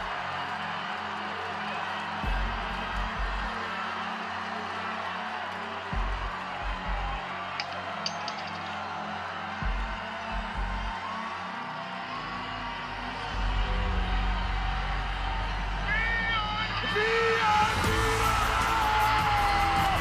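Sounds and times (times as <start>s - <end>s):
studio audience noise: 0.0s - 20.0s.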